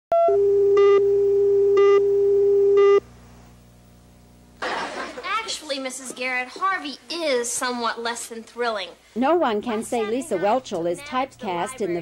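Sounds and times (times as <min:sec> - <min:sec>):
faint hum: 0:00.2 - 0:12.0.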